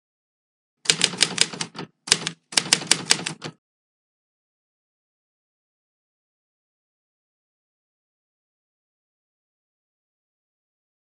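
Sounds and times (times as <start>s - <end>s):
typewriter key strikes: 0.9s - 3.6s.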